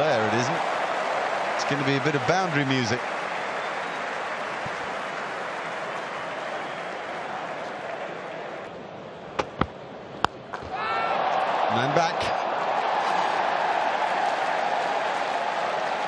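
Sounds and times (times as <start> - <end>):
crowd cheering and applauding: 0.0 - 8.7, 10.6 - 16.0.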